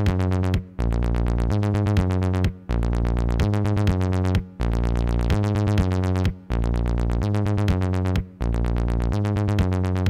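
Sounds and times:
low synth bass: 0.0s - 10.0s.

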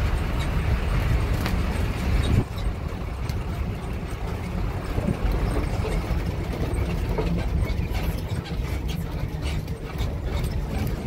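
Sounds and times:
vehicle engine and tyres on gravel: 0.0s - 11.0s.

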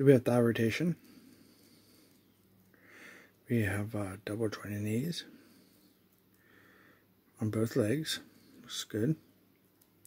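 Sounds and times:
faint low hum: 0.0s - 10.0s
soft breath: 1.0s - 3.4s, 5.2s - 7.2s.

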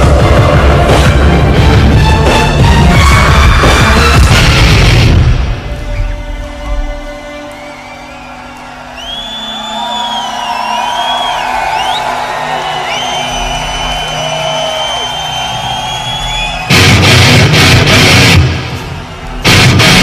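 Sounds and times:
rock music: 0.0s - 20.0s.

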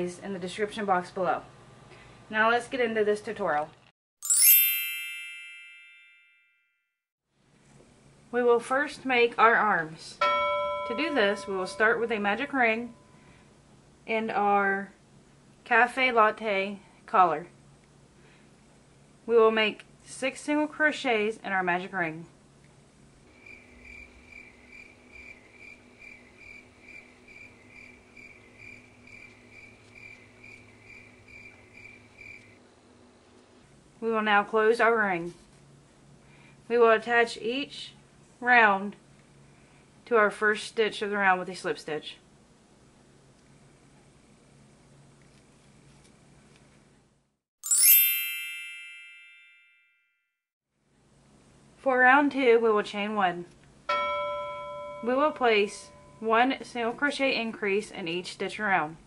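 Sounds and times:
bright chime: 4.2s - 6.7s, 10.2s - 12.2s, 47.6s - 50.1s
low steady hum: 9.5s - 14.2s, 53.8s - 57.4s.

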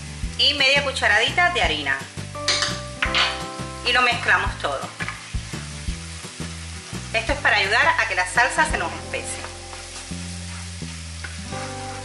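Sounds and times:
onion and garlic sizzling in oil: 0.0s - 12.0s
spoon scraping a pan: 9.4s - 12.0s.

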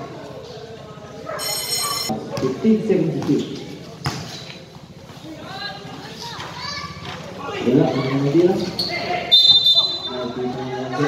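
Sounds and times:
shrill whistle blast: 9.3s - 10.2s.

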